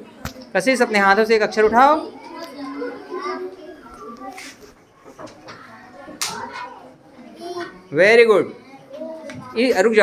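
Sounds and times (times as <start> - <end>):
children talking quietly: 0.0 - 10.0
teacher speaking: 0.0 - 10.0.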